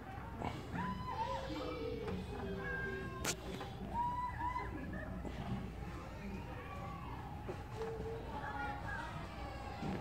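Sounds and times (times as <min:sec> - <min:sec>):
children calling and squealing: 0:00.0 - 0:10.0.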